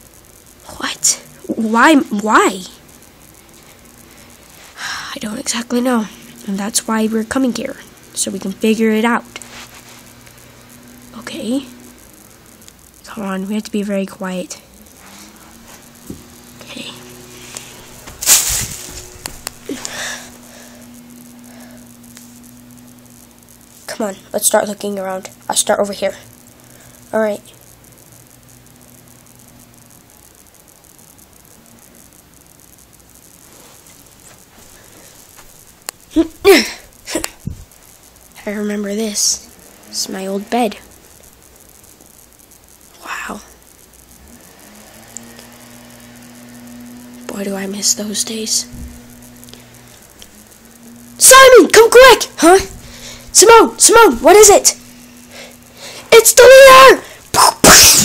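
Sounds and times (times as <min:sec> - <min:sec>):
faint ticks: 0:00.0 - 0:56.1
faint hiss: 0:00.0 - 0:58.0
steady low hum: 0:00.0 - 0:58.0.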